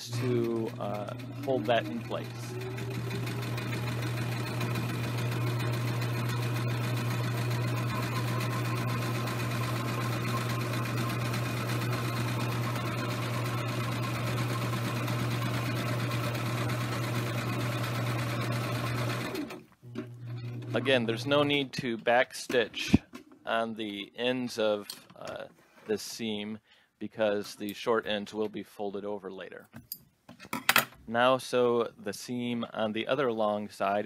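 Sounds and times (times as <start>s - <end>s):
sewing machine stitching: 0.0s - 21.6s.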